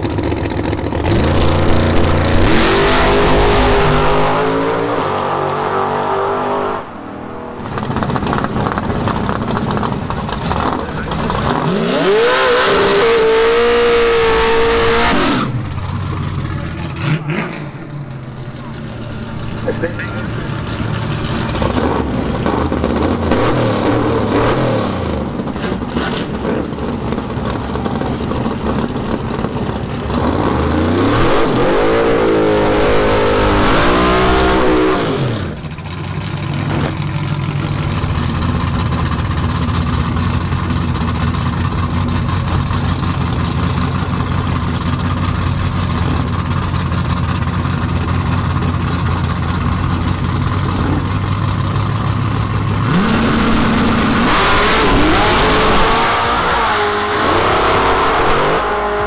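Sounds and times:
drag race car engines revving: 0.0 - 59.0.

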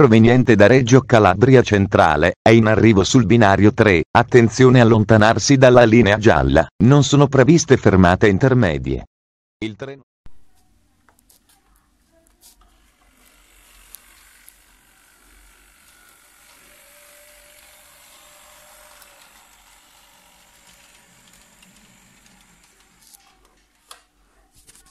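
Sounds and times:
model train motor whirring: 12.4 - 24.1.

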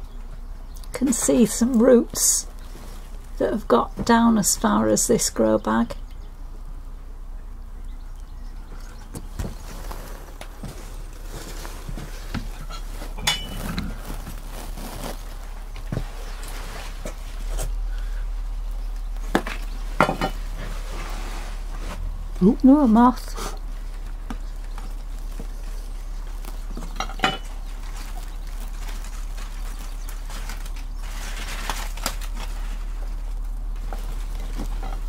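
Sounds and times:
tool scraping compost: 9.1 - 18.3, 19.0 - 35.0.

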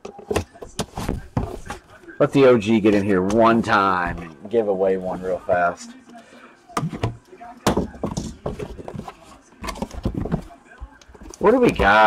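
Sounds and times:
scrapes and knocks on cardboard: 0.2 - 1.8, 6.8 - 12.0.

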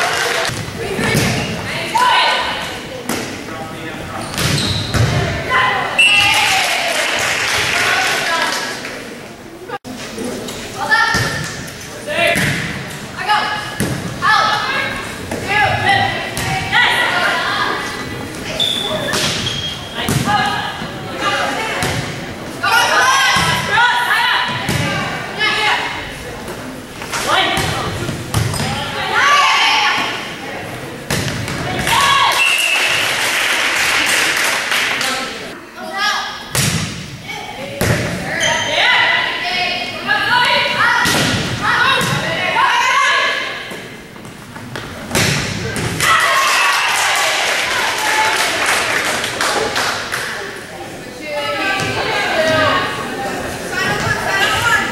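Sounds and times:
girls calling out and shouting: 0.9 - 2.6, 13.2 - 17.9, 22.6 - 26.0, 28.7 - 30.3, 35.7 - 36.5, 37.2 - 43.6
volleyball thump: 12.3 - 12.8, 31.1 - 32.2, 36.5 - 37.2, 41.0 - 42.3, 44.7 - 46.1
girls shouting and cheering: 28.8 - 30.2, 31.7 - 32.4, 41.6 - 43.6, 46.0 - 48.7
volleyball thuds: 36.5 - 37.2.

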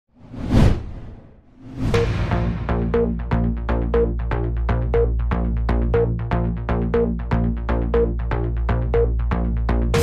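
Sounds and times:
whoosh: 0.1 - 3.4
electronic music: 1.8 - 10.0.

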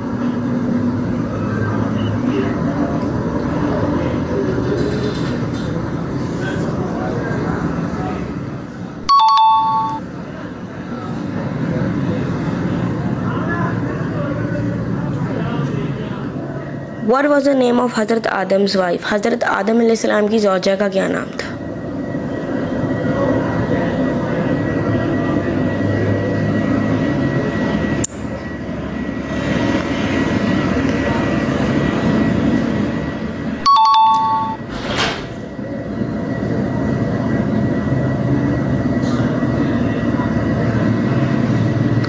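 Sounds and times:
short electronic beep: 9.0 - 10.1, 33.6 - 34.7.

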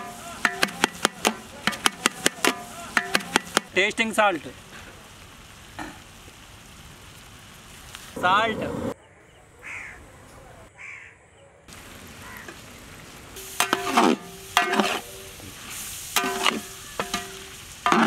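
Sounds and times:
pot ringing: 13.6 - 15.0, 16.2 - 18.0
skimmer scraping metal pot: 13.6 - 15.0.

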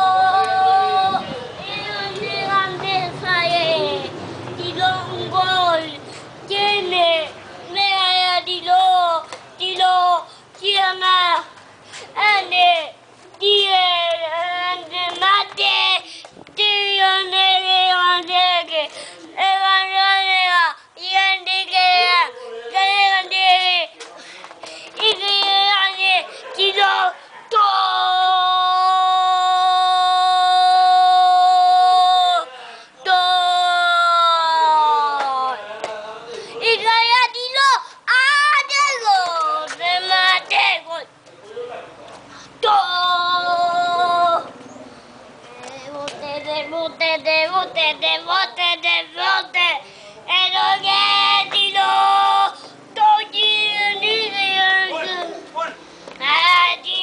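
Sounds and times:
toddler's sing-song voice: 0.0 - 24.0, 24.9 - 35.6, 36.6 - 41.1, 42.5 - 44.6, 45.5 - 55.5, 56.2 - 57.0.

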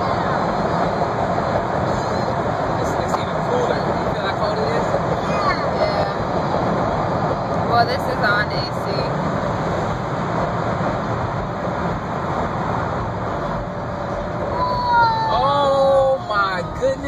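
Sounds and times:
car road and engine noise: 0.0 - 17.0.

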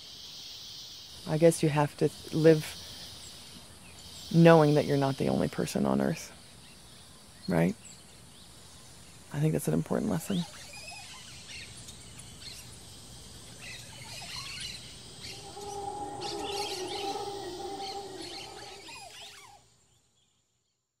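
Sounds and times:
birds calling and chirping: 10.6 - 19.5
low wavering drawn-out call: 15.2 - 19.3.

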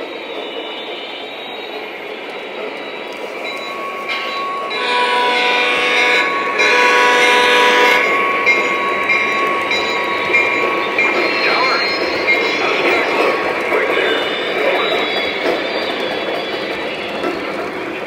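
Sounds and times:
model train rumbling on track: 0.0 - 18.0
model train horn: 4.8 - 8.2.

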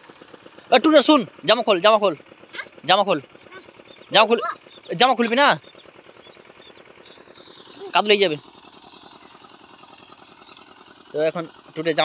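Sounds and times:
small engine puttering: 0.0 - 12.0
child's voice: 3.5 - 5.6, 7.8 - 8.1.

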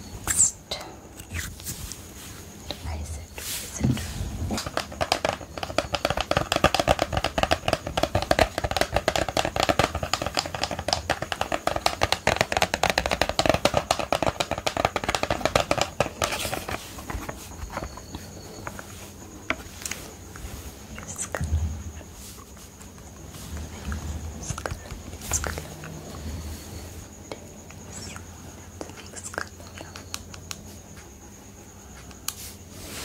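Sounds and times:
fingernails tapping on plastic case: 4.6 - 16.8.

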